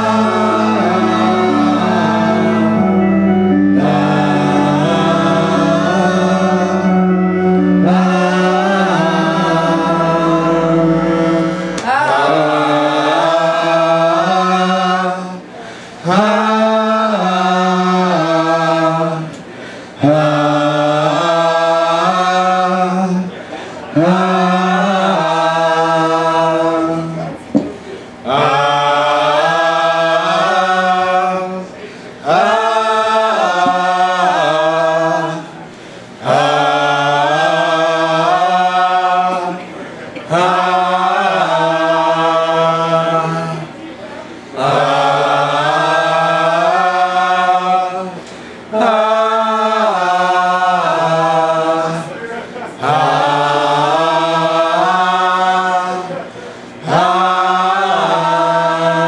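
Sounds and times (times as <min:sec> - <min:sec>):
people chanting one held note: 0:00.0 - 0:16.4
low chanted vocal drone: 0:00.0 - 0:27.4, 0:28.2 - 0:59.0.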